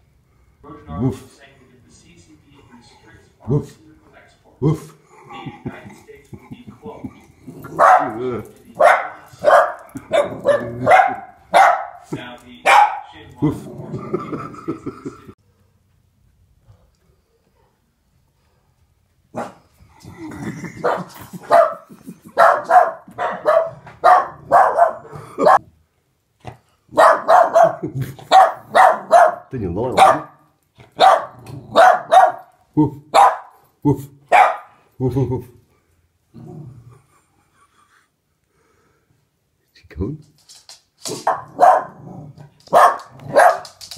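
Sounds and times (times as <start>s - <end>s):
small dog barking: 7.7s - 8.2s, 8.8s - 13.1s, 19.4s - 19.6s, 20.8s - 21.8s, 22.4s - 25.6s, 26.9s - 30.4s, 31.0s - 32.5s, 33.1s - 33.6s, 34.3s - 34.7s, 41.2s - 42.0s, 42.7s - 43.8s.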